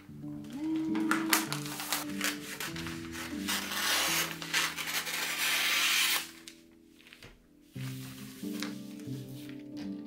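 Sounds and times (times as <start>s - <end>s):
soft background music: 0.0s - 10.0s
wrapping paper rustling: 0.0s - 10.0s.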